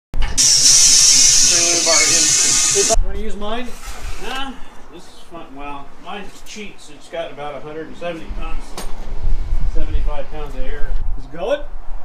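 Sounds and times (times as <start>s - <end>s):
compressed air hissing: 0.3s - 3.0s.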